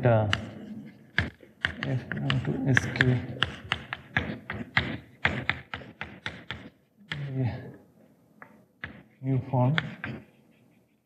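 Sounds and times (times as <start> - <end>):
chalk tapping and scraping: 0.0 - 7.6, 8.4 - 11.0.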